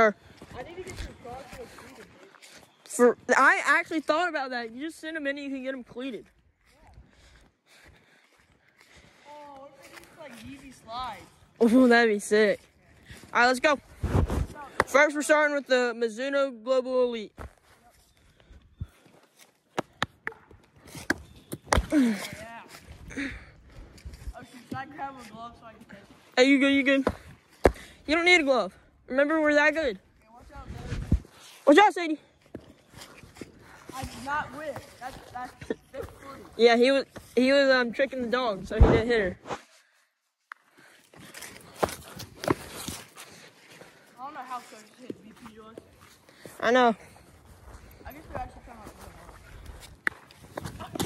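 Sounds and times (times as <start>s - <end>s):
footsteps on dry leaves: 0.2s - 3.3s, 6.1s - 14.7s, 22.0s - 27.7s, 30.4s - 37.4s, 40.8s - 51.0s
movement on grass: 0.2s - 15.4s, 22.0s - 28.4s, 30.0s - 51.0s.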